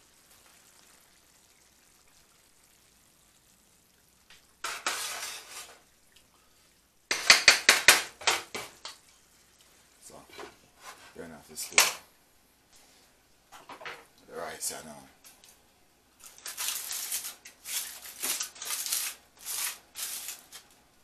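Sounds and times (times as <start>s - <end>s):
scraping hiss: 4.3s - 5.9s
wooden spoon stirring in pan: 4.3s - 5.9s, 6.7s - 11.2s.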